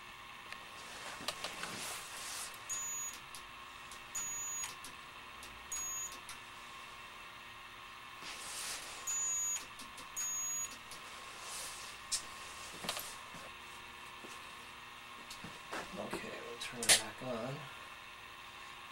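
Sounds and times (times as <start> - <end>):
faint electrical hum: 0.0 - 18.9
high-pitched transformer whine: 2.5 - 6.5, 9.0 - 11.1.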